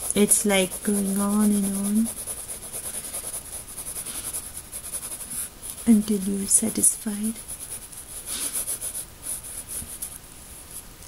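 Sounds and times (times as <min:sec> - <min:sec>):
pencil scratching on paper: 0:00.0 - 0:10.2.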